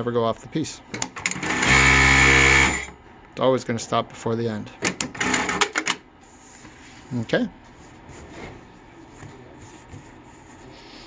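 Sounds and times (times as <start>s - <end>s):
sewing machine clattering: 4.9s - 6.0s.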